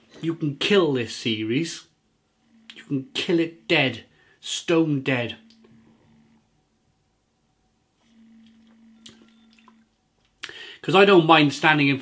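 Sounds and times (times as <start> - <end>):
faint low hum: 0.0 - 11.3.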